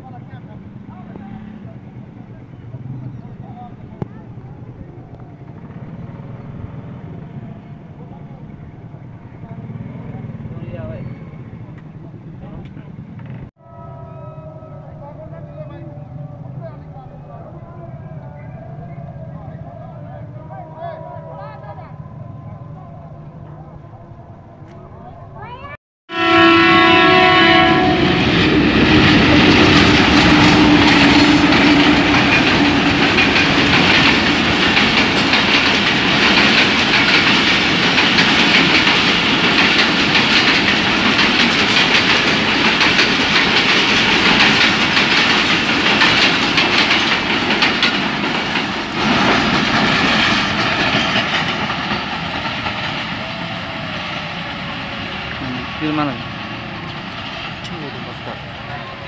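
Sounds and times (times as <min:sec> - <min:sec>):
passenger train rumbling past: 0:00.0 - 0:59.0
locomotive horn: 0:26.1 - 0:33.0.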